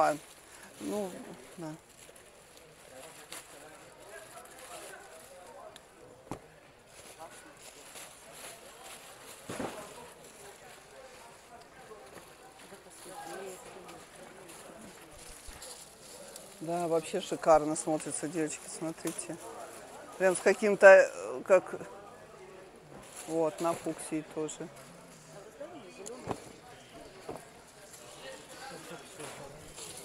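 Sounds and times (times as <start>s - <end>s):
plastic wrapping rustling: 0.0s - 5.8s, 6.8s - 18.1s, 26.2s - 30.0s
background chatter of voices: 0.0s - 30.0s.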